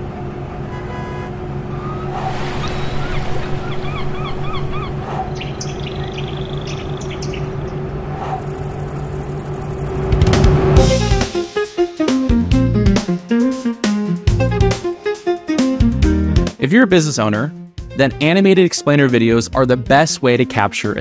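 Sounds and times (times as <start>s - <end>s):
bus engine humming: 0.0s - 11.3s
rising bird chirps: 1.7s - 10.2s.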